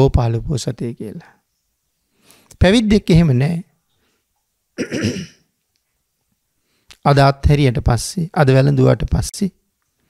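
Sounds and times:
man clearing his throat: 4.8s - 5.5s.

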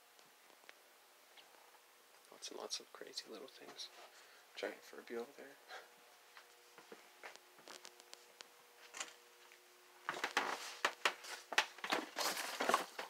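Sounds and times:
faint steady hum: 0.0s - 13.0s
plastic packaging crinkling: 10.1s - 13.0s
rummaging in cardboard box: 10.1s - 13.0s.

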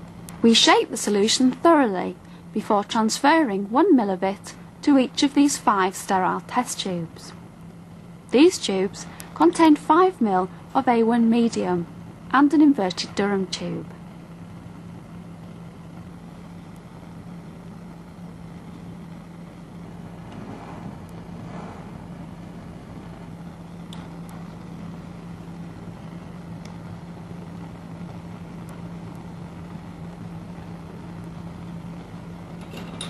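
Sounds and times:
constant hiss: 0.0s - 33.0s
steady low hum: 0.0s - 33.0s
soft rustle: 20.2s - 22.0s.

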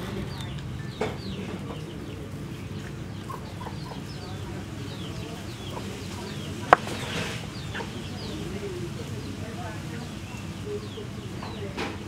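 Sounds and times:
chickens clucking and peeping: 0.0s - 12.0s.

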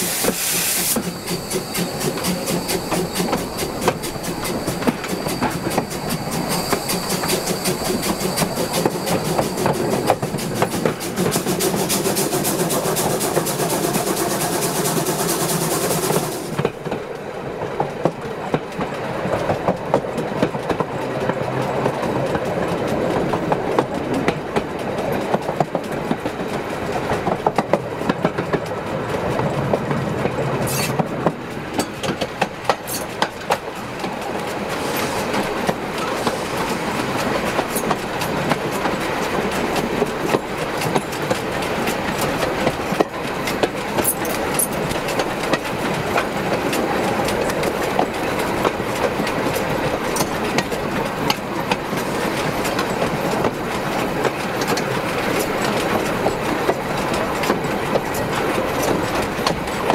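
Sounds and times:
loud hiss: 0.0s - 16.6s
wagon wheels rumbling on rails: 0.9s - 59.9s.

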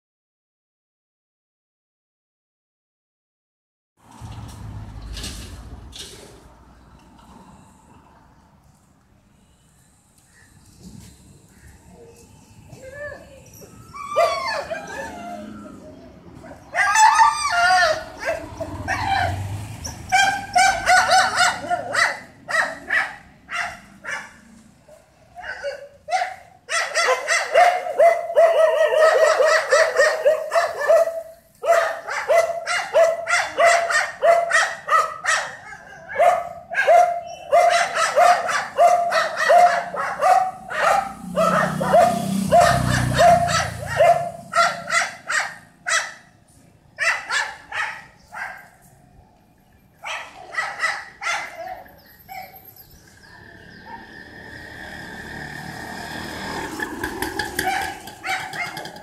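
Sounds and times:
dog barking rapidly: 17.8s - 24.3s, 25.4s - 46.2s, 47.0s - 48.6s, 50.0s - 52.5s, 57.5s - 59.0s.

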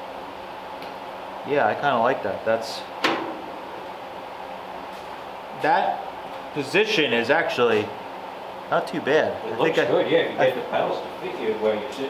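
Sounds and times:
steady workshop hum: 0.0s - 12.0s.

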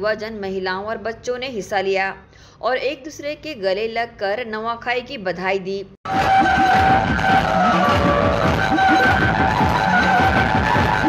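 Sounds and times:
barrel drums beating fast: 6.1s - 11.0s
high held melody: 6.1s - 11.0s.

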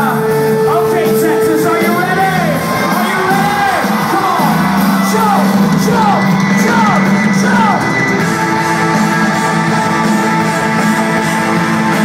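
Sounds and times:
crowd whooping and yelling: 0.0s - 12.0s.

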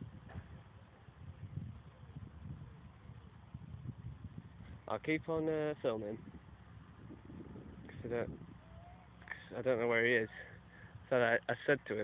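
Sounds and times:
low uneven rumble: 0.0s - 12.0s.

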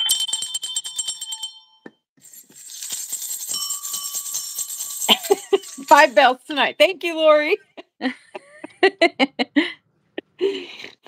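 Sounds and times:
small bells shaking: 0.0s - 6.7s.

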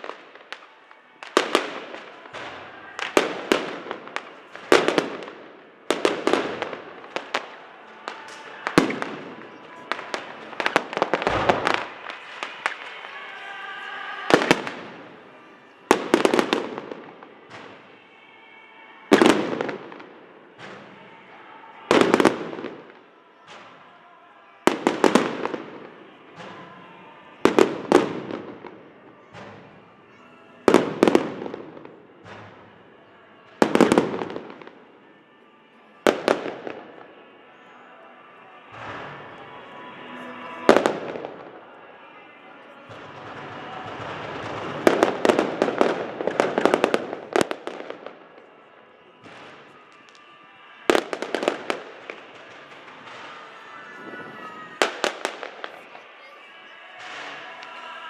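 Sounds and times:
firework crackle: 0.0s - 18.2s, 19.1s - 24.0s, 24.6s - 35.2s, 38.7s - 42.2s, 42.8s - 58.0s.

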